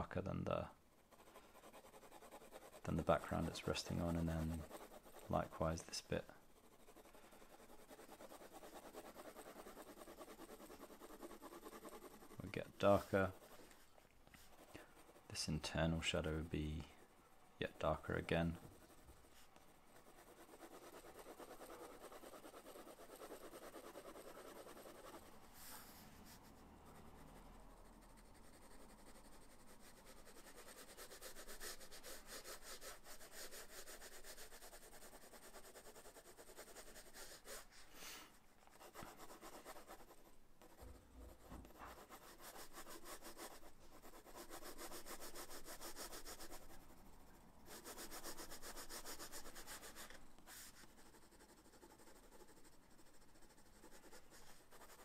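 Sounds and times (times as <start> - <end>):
pencil scratching on paper: 1.1 - 55.0.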